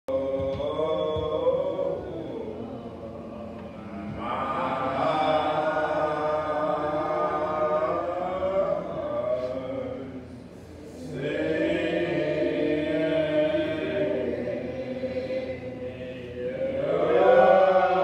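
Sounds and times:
a cappella chanted singing: 0.1 - 18.0.

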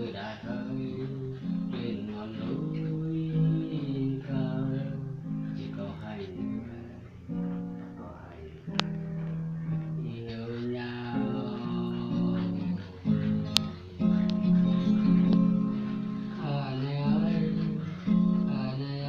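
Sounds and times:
acoustic guitar strumming chords: 0.0 - 19.0.

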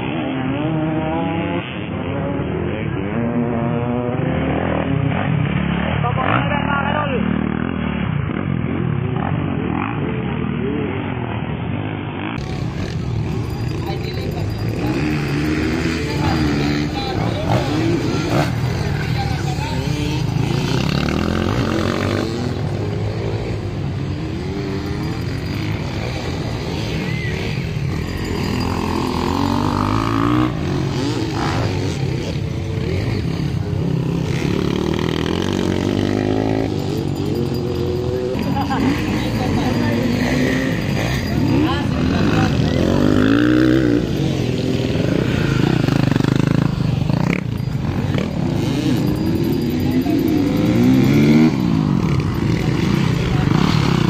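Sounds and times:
dirt bike engines revving: 0.0 - 54.0
people talking and calling: 0.0 - 54.0.

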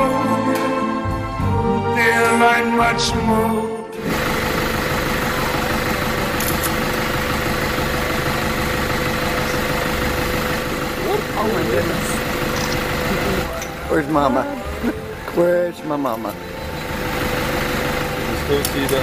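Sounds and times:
vehicle engine idling: 4.0 - 19.0.

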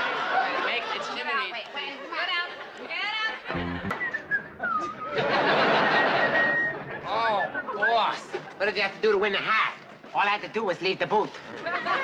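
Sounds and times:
dense crowd noise: 0.0 - 12.0
audience laughter: 3.4 - 7.8
whistle-like tone: 3.7 - 8.2.

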